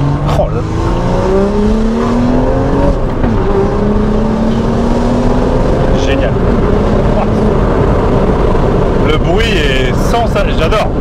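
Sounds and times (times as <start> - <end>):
car engine accelerating: 0.0 - 11.0.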